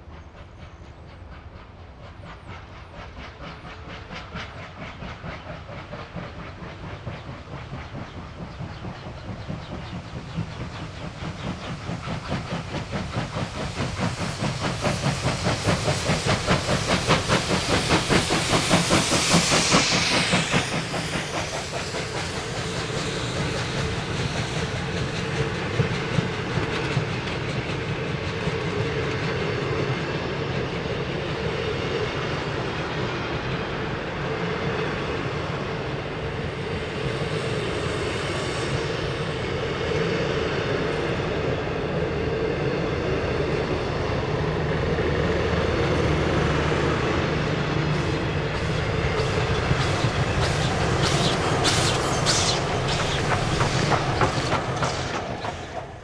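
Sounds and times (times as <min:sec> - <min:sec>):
steam locomotive exhaust beats: 0:00.0 - 0:56.0
steam hiss: 0:00.4 - 0:56.0
wheels clicking over rail joints: 0:48.0 - 0:56.0.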